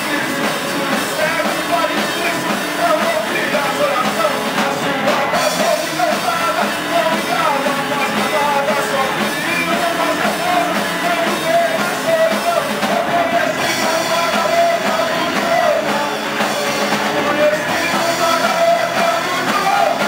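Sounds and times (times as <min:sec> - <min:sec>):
loud live punk blues band: 0:00.0 - 0:20.0.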